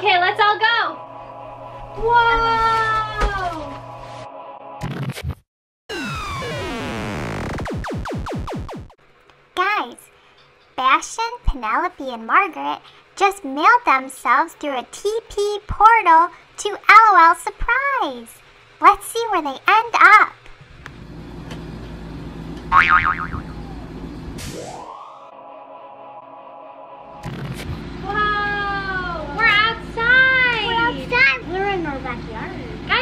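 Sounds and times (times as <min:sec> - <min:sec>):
child exclaiming: 0:02.0 - 0:03.7, 0:09.6 - 0:10.0, 0:28.0 - 0:31.5
synthesized falling tones: 0:05.9 - 0:09.0, 0:22.7 - 0:27.8
quick downward zaps: 0:24.4 - 0:25.3.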